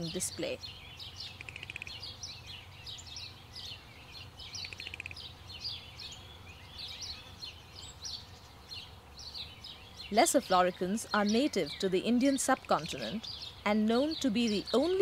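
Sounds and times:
small birds chirping: 0.0s - 15.0s.

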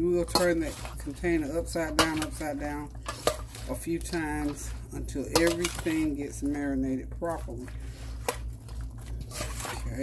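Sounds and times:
utensil scraping metal bowl: 0.0s - 10.0s
wet rustle of vegetables: 0.0s - 10.0s.

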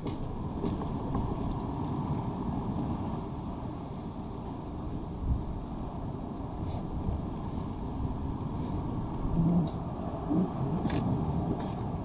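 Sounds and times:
low rumble of background noise: 0.0s - 12.0s.

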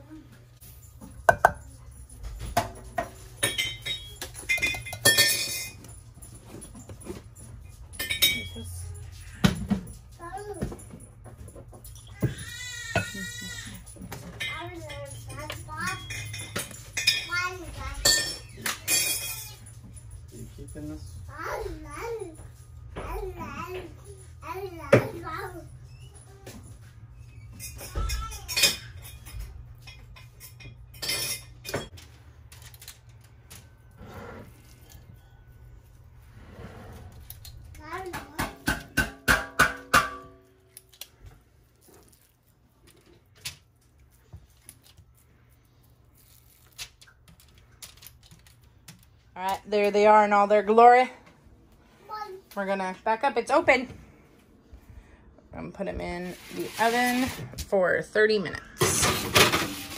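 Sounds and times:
spoon clinking on glass bowl: 1.3s - 1.7s.

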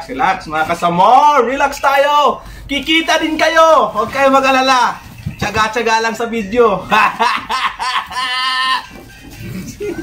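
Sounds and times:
man laughing: 6.9s - 10.0s.

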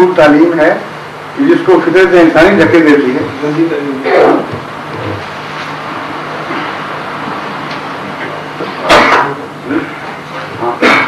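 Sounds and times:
low continuous hum: 0.0s - 11.0s.

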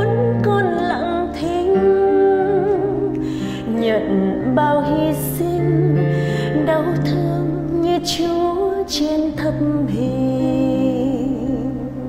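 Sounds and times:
woman singing a slow hymn: 0.0s - 12.0s.

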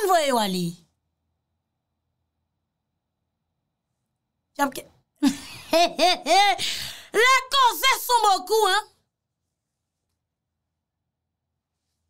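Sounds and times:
woman's voice: 0.0s - 0.9s, 4.6s - 5.0s, 6.2s - 9.0s.

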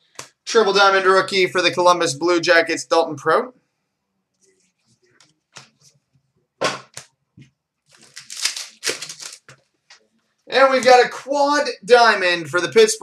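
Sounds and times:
foil wrappers crinkling: 7.8s - 9.6s
trading cards being handled: 7.9s - 10.0s.

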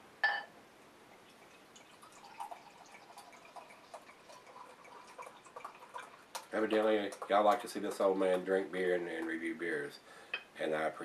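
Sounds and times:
glass clink: 0.2s - 0.5s
beer gurgling and splashing into glass: 1.3s - 7.4s.

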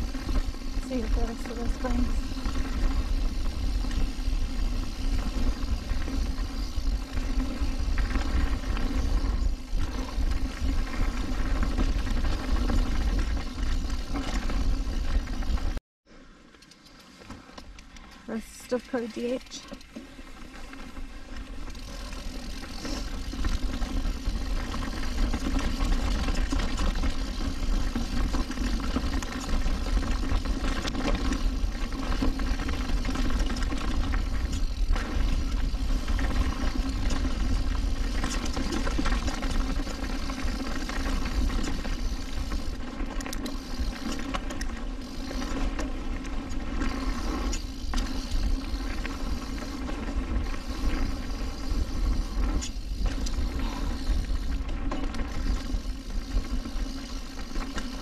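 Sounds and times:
bike rattling over bumps: 0.0s - 15.8s, 16.4s - 58.0s.

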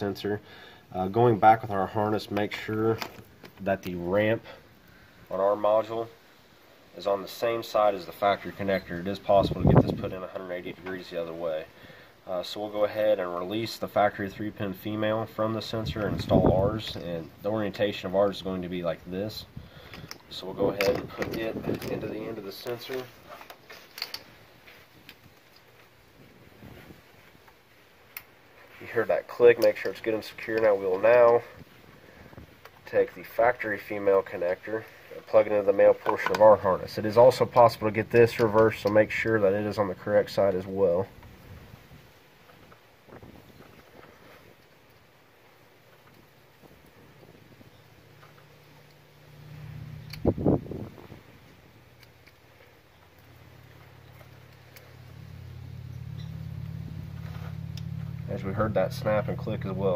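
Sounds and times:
low steady hum: 0.0s - 59.9s
hands rustling with wiring: 13.5s - 59.9s.

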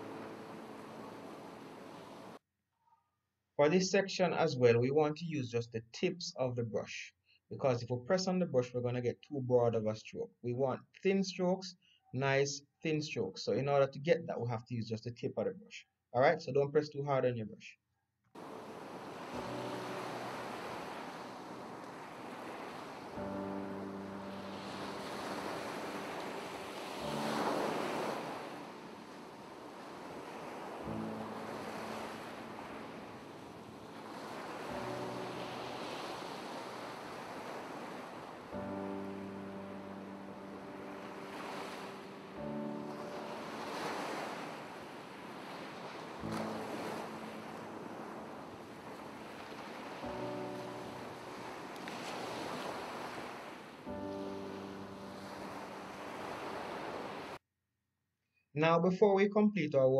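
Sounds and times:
ocean waves: 0.0s - 2.4s, 18.4s - 57.4s.

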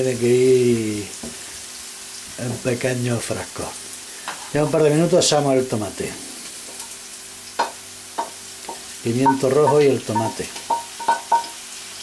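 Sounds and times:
vegetables sizzling in a frying pan: 0.0s - 12.0s.

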